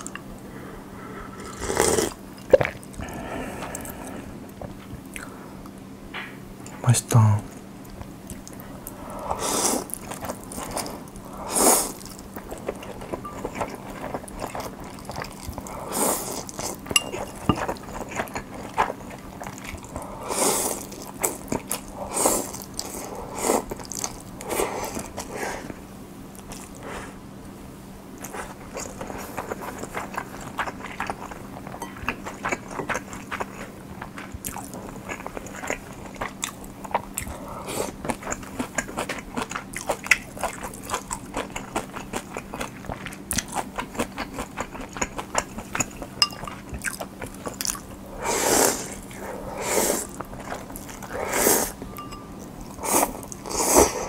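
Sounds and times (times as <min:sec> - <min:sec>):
slurping noodles: 0:01.4 - 0:02.2, 0:19.9 - 0:21.4, 0:48.2 - 0:51.8
crunchy chewing: 0:09.3 - 0:27.1, 0:28.2 - 0:54.0.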